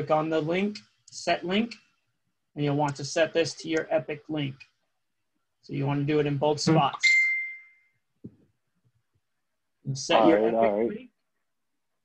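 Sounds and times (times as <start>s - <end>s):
high ding: 7.0s - 7.9s.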